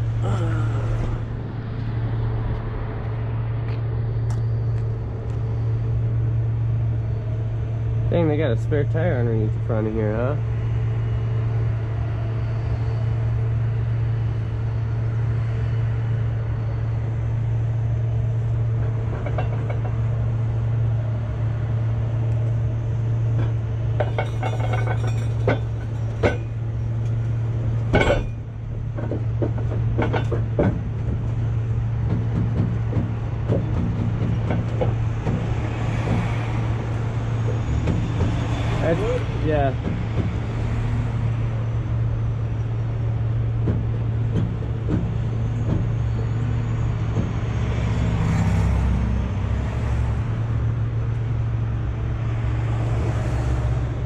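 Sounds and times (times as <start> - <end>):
diesel engine idling: 0.0 - 54.0
sharp metal clanks: 23.4 - 27.2, 27.9 - 30.9.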